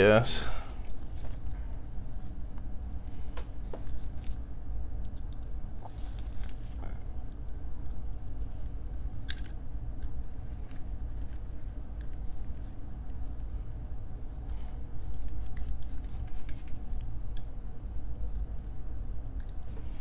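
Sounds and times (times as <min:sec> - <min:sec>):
steady low hum: 0:00.0 - 0:20.0
gloved hand handling noise: 0:00.8 - 0:06.8.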